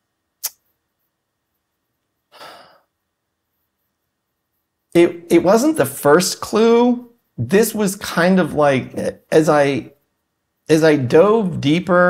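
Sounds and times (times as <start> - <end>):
person breathing sigh: 2.3 - 2.9.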